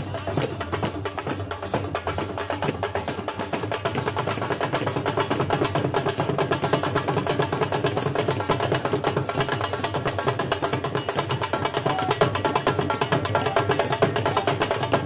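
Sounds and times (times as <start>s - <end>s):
barrel drums beaten with sticks: 0.0s - 15.0s.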